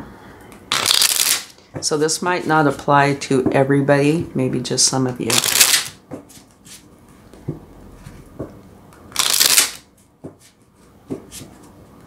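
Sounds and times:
cards being shuffled: 0.7s - 1.6s, 5.3s - 6.8s, 9.1s - 10.6s.

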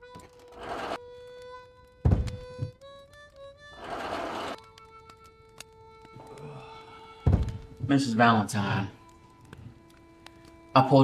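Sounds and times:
heavy thunk into wooden chair: 2.1s - 2.7s, 7.3s - 7.6s.

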